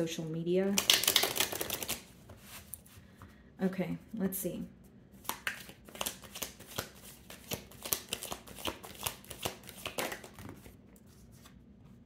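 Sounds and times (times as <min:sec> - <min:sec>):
cards being shuffled: 0:00.8 - 0:02.8, 0:05.2 - 0:11.6.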